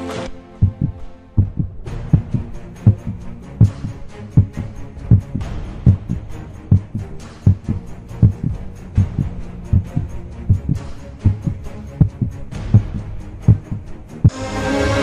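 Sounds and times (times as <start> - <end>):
heartbeat-like double thump: 0.6 - 13.9.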